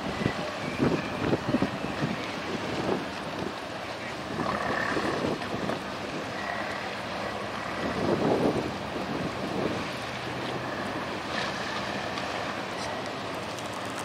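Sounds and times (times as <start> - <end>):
wind buffeting microphone: 0.0 - 12.6
boat engine running: 0.0 - 14.0
water noise: 0.0 - 14.0.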